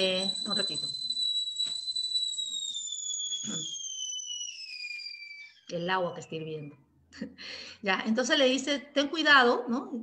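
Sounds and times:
kettle whistling: 0:00.0 - 0:06.7.

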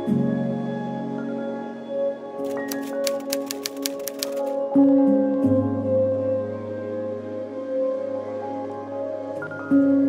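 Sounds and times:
soft ambient music: 0:00.0 - 0:10.0
typewriter key clacks: 0:02.4 - 0:04.6.

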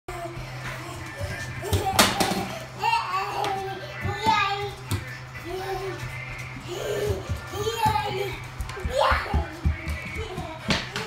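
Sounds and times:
child talking and exclaiming: 0:00.1 - 0:06.0, 0:06.7 - 0:11.0.

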